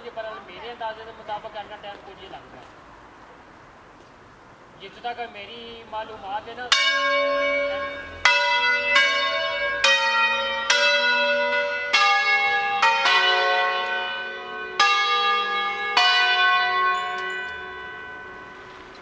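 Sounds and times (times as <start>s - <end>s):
church bells pealing: 6.6s - 19.0s.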